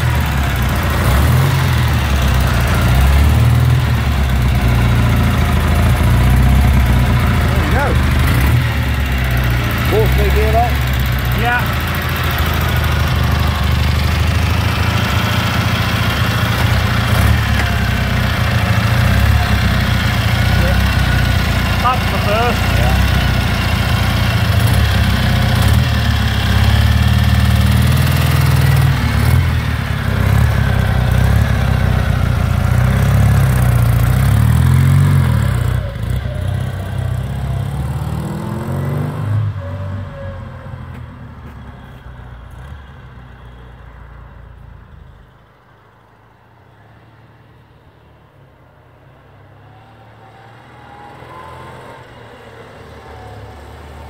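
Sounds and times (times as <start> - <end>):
motorcycle engine idling and revving: 0.0 - 54.0.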